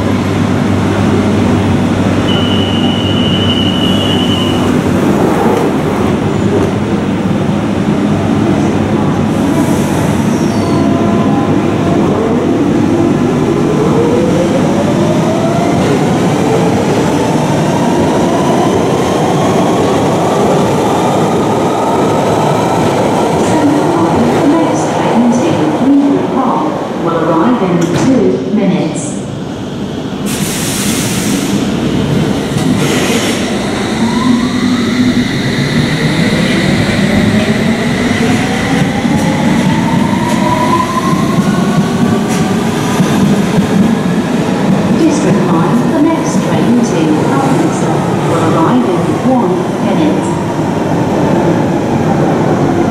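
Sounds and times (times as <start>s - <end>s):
rail and wheel noise: 0.0s - 52.9s.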